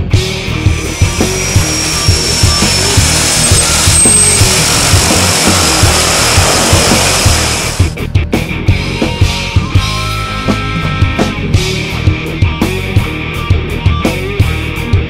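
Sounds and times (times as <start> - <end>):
turboprop engines whining: 0.0 - 8.0
rock music with drum beat: 0.0 - 15.0.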